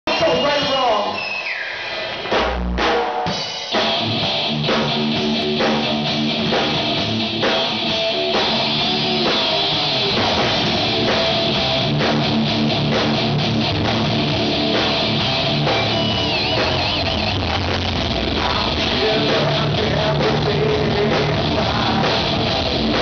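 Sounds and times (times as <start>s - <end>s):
rock band playing: 0.1s - 23.0s.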